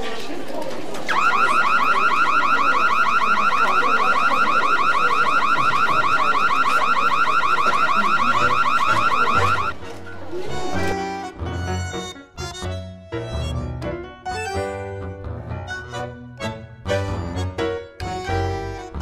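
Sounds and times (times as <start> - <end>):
electronic alarm warbling: 1.1 - 9.8.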